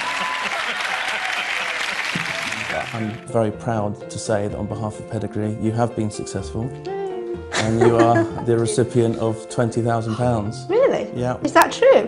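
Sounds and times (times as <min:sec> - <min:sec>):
audience applauding: 0:00.0 - 0:03.3.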